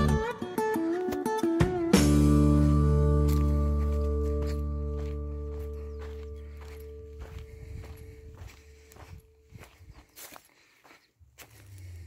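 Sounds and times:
held music chord: 0.0s - 7.6s
footsteps on dry ground: 0.8s - 12.0s.

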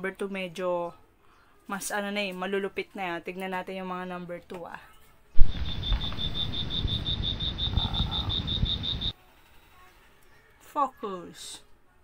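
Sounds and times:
high repeating chirp: 5.4s - 9.1s
rumbling hiss: 5.4s - 9.1s.

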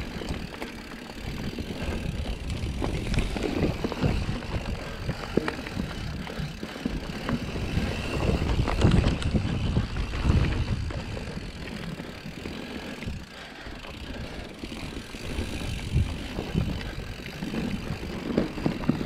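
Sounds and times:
bike knocking and rattling: 0.0s - 19.0s
bike tyres rumbling on dirt: 0.0s - 19.0s.

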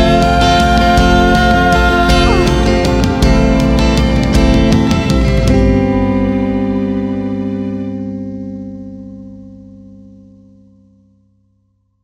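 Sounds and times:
low bass note: 0.0s - 11.5s
electric guitar chord ringing: 0.0s - 11.9s.

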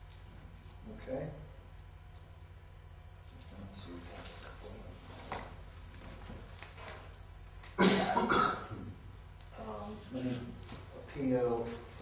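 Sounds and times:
person coughing: 7.8s - 8.9s.

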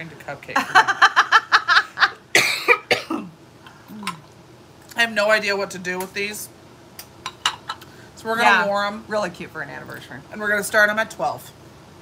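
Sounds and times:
woman laughing: 0.6s - 2.2s
woman coughing: 2.3s - 3.4s.

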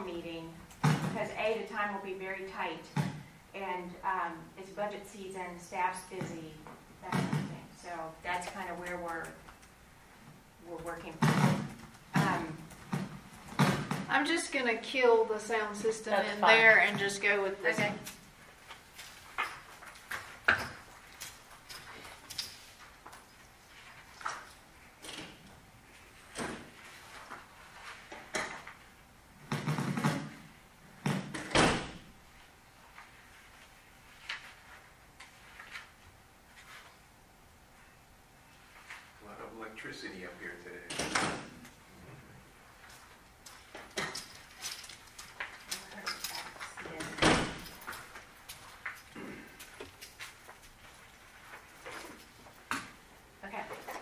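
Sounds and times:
knocks and bumps of handled objects: 0.8s - 1.3s, 11.1s - 14.1s.

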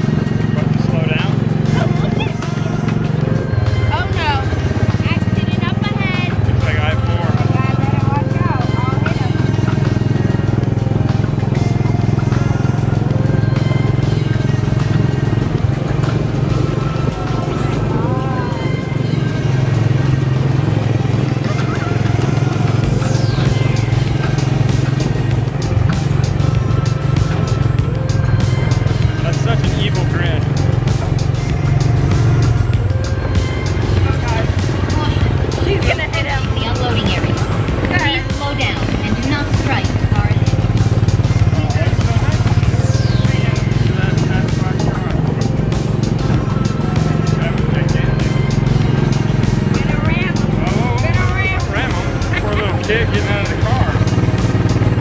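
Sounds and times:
small gasoline engine droning: 0.0s - 55.0s.

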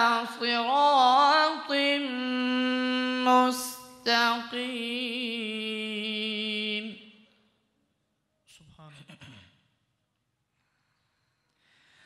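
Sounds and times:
faint breath: 10.5s - 12.0s.

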